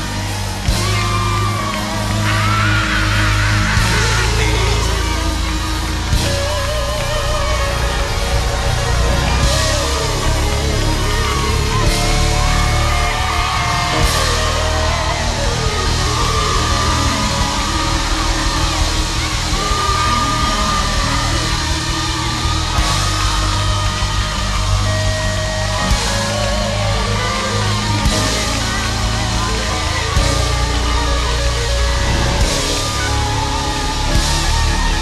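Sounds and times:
gospel band playing: 0:00.0 - 0:35.0.

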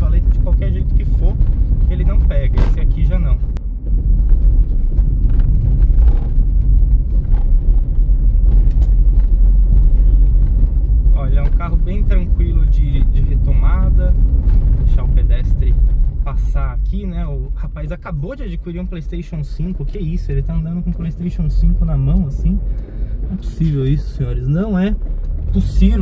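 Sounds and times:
car engine and tyres rumbling: 0:00.0 - 0:26.0.

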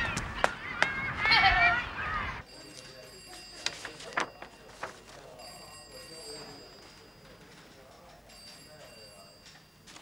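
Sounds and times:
telephone bell ringing: 0:02.4 - 0:07.4.

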